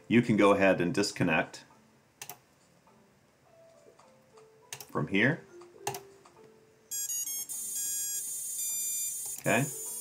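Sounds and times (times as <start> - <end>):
electronic motor beep tones: 6.9 - 10.0.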